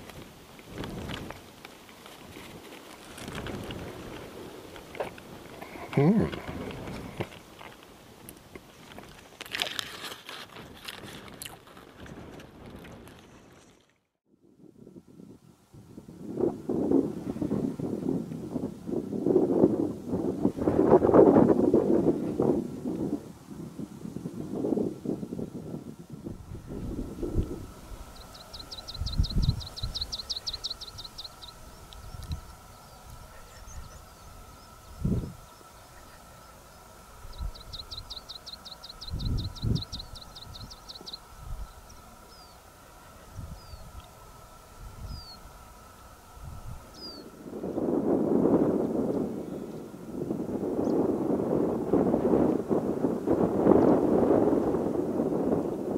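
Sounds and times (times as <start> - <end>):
wind buffeting microphone: 0.0 - 13.6, 14.4 - 55.9
faint background hum: 14.5 - 55.9.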